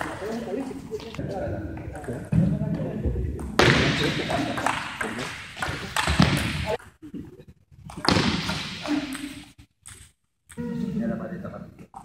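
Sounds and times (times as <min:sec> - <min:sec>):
voices echoing in a hall: 0:00.0 - 0:09.7, 0:10.5 - 0:12.0.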